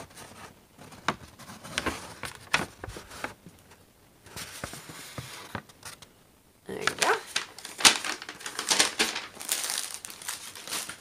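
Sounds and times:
packaging rustling and crinkling: 6.8s - 11.0s.

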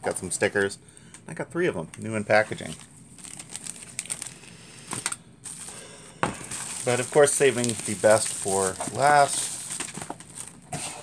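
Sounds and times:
plastic wrap crinkling: 2.3s - 11.0s.

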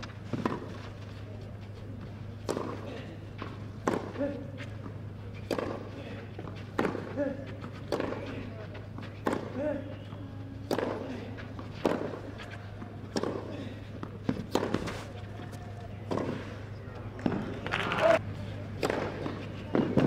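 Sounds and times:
steady low hum: 0.0s - 20.0s
tennis racket hitting ball: 2.4s - 2.8s, 3.8s - 4.2s, 5.4s - 8.4s, 9.2s - 9.7s, 10.6s - 13.6s, 14.2s - 15.1s.

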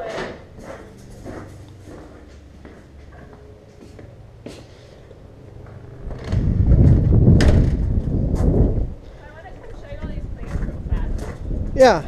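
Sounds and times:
microphone buffeting and handling noise: 5.6s - 9.0s, 9.7s - 11.8s.

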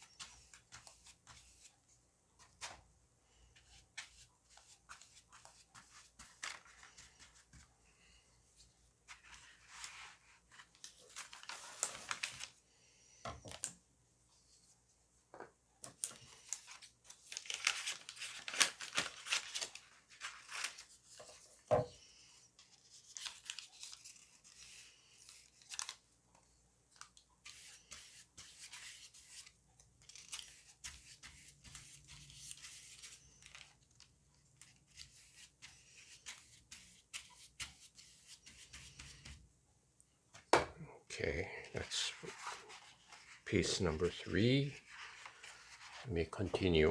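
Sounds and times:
paper rustling: 0.0s - 1.8s, 2.4s - 12.6s, 15.8s - 21.8s, 22.6s - 39.4s, 41.7s - 46.9s.

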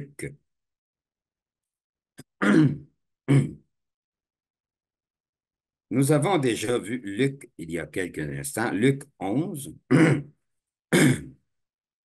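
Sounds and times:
man clearing his throat: 2.2s - 3.7s, 9.9s - 11.4s.

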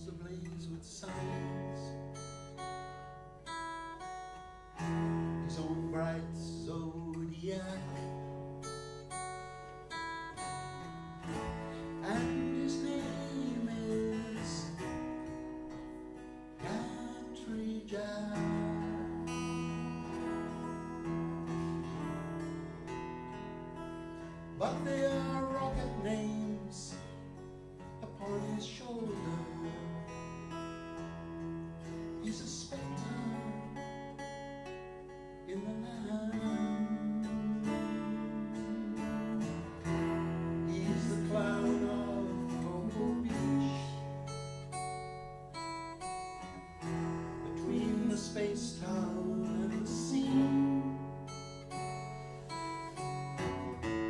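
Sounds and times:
acoustic guitars: 0.0s - 54.0s
woman singing folk song: 24.6s - 27.0s, 35.6s - 44.6s, 46.7s - 54.0s.

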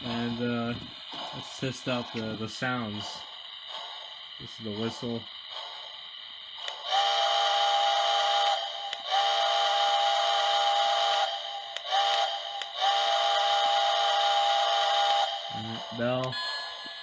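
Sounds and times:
recorded steam whistle blasts: 6.7s - 16.3s.

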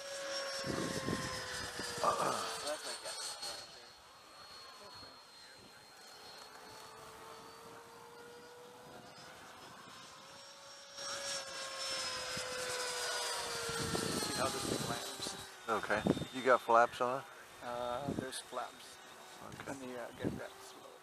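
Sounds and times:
model jet fan whine: 0.0s - 21.0s.

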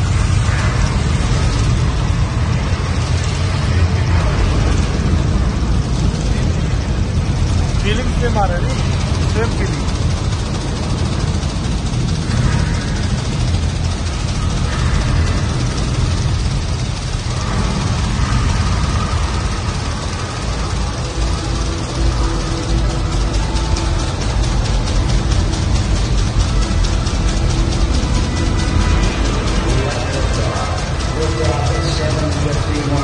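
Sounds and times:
music: 0.0s - 33.0s.

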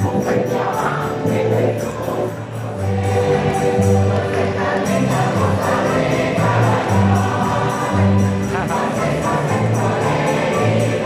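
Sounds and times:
accordion: 0.0s - 11.0s
choir singing: 0.0s - 11.0s
guitar ensemble playing lively song: 0.0s - 11.0s.

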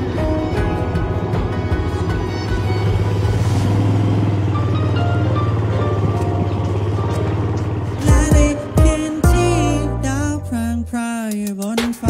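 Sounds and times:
background music: 0.0s - 12.0s
small motorbike engine revving: 2.0s - 8.3s.

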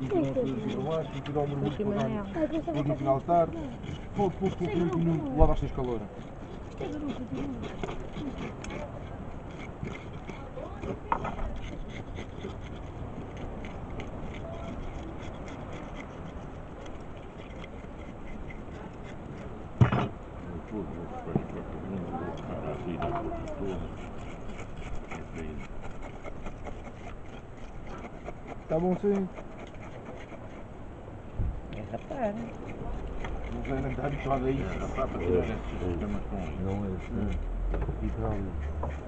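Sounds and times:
scraper scaling fish: 0.0s - 30.8s, 31.8s - 37.4s, 38.0s - 39.0s.

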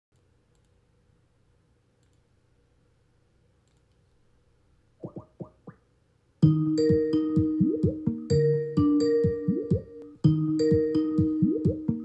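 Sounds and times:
faint clicks: 0.2s - 0.8s, 2.0s - 2.3s, 3.6s - 4.1s
rising electronic chirps: 6.6s - 12.0s.

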